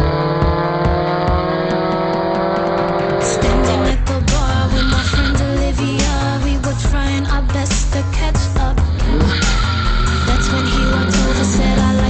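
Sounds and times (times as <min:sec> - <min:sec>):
car engine revving: 0:00.0 - 0:06.7, 0:08.7 - 0:12.0
music with steady beat: 0:00.0 - 0:12.0.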